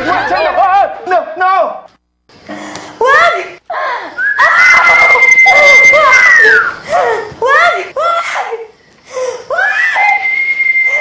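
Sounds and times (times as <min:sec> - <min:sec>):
shrill human scream: 0:04.2 - 0:06.8, 0:09.5 - 0:11.0.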